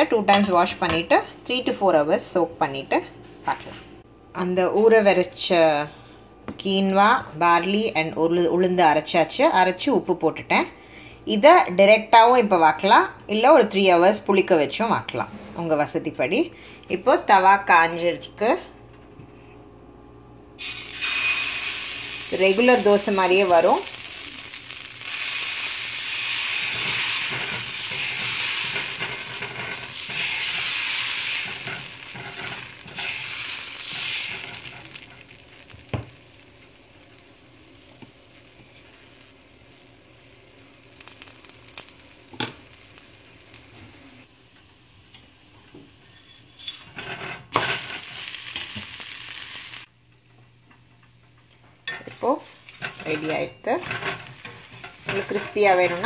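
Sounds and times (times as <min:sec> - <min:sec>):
batter sizzling on hot pan: 0:20.6 - 0:49.9, 0:52.1 - 0:56.0
ladle scraping pan: 0:26.5 - 0:35.2, 0:51.9 - 0:56.0.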